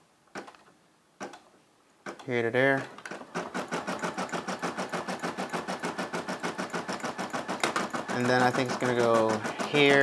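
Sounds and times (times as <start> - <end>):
embroidery machine stitching: 3.0 - 10.0.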